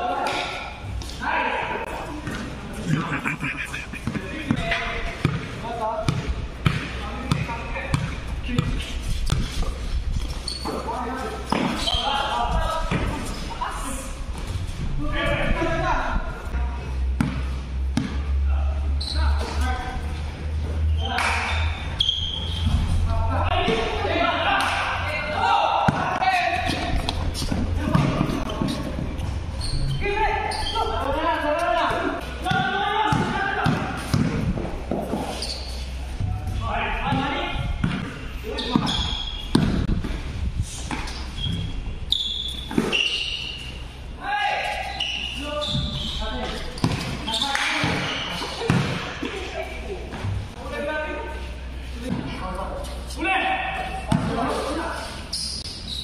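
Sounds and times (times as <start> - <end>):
basketball bouncing on hard court: 4.0 - 8.8, 27.0 - 28.8, 32.5 - 35.0, 37.1 - 40.2, 46.8 - 47.2, 47.8 - 49.0.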